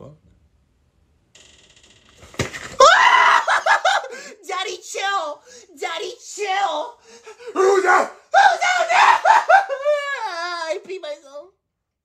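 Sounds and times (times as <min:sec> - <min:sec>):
man yelling loudly: 0:03.2 - 0:11.5.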